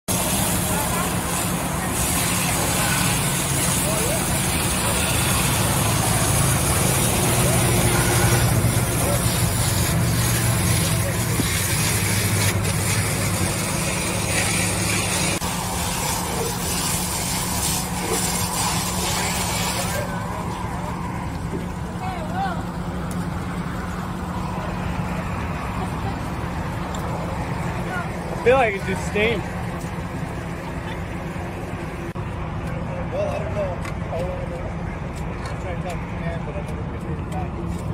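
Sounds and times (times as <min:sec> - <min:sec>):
fire hose spraying water: 0:00.1 - 0:32.4.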